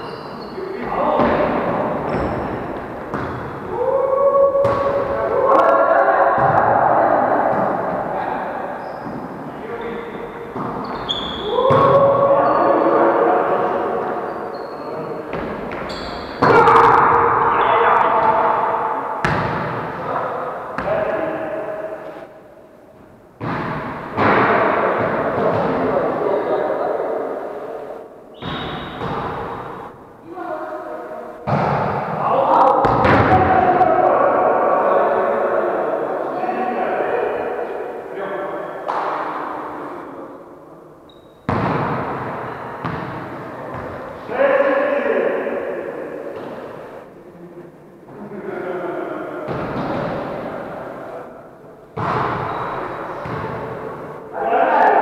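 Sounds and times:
players calling out: 0:00.0 - 0:22.3
volleyball smacks echoing: 0:01.2 - 0:03.6, 0:04.6 - 0:05.2, 0:19.2 - 0:20.2, 0:28.4 - 0:29.9, 0:31.4 - 0:33.5, 0:41.5 - 0:44.0, 0:52.0 - 0:52.5.

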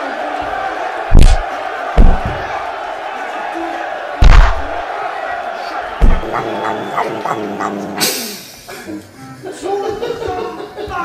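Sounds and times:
heavy thumps on floor: 0:02.0 - 0:02.5, 0:06.0 - 0:06.4
background voices: 0:06.0 - 0:08.1.

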